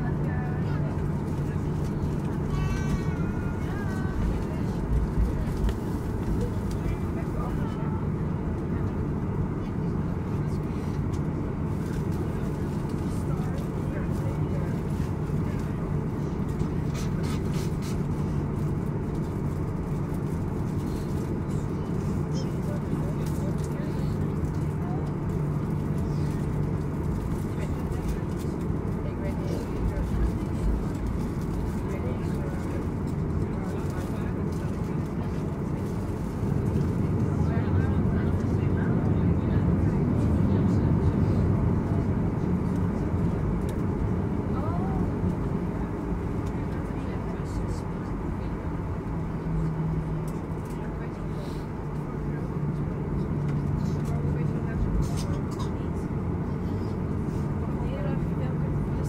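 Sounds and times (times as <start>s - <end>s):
jet engines idling hum: 0.0s - 59.0s.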